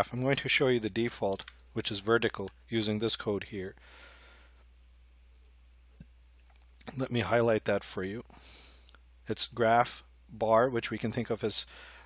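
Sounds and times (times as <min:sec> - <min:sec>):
low electrical hum: 0:00.0 - 0:12.0
computer mouse click: 0:05.3 - 0:06.8
man's voice: 0:09.3 - 0:11.7.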